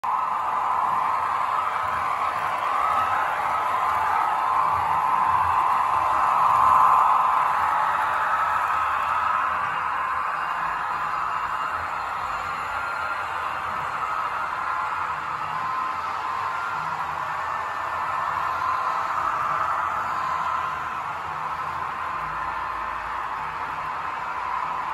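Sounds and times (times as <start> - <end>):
model trains rolling on track: 0.1 - 24.9.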